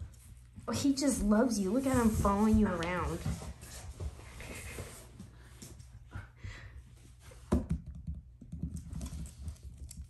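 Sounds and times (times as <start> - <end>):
dog claws clicking on floor: 7.6 - 10.0.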